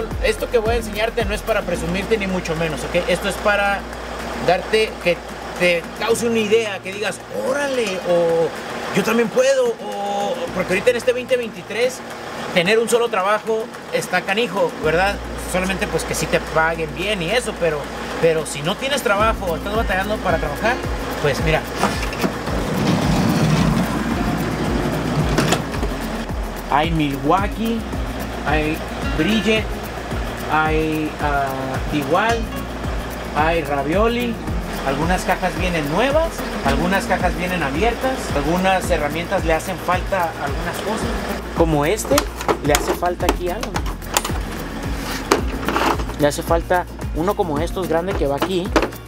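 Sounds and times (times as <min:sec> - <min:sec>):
background music with steady beat: 0:00.0 - 0:49.0
sliding door knocking at stop: 0:21.4 - 0:26.0
sliding door rumbling along track: 0:21.4 - 0:26.3.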